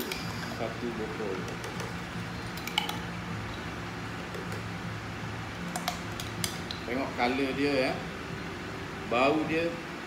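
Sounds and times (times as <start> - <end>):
steady low hum: 0.0 - 10.0
spoon clicking and tapping: 5.7 - 6.8.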